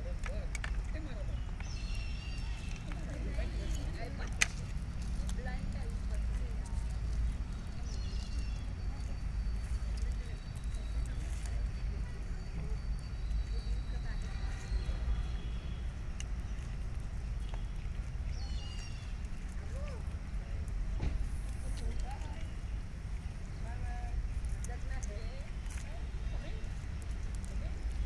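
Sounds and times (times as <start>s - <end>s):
faint distant voices talking: 0.0s - 28.0s
steady low rumble: 0.0s - 28.0s.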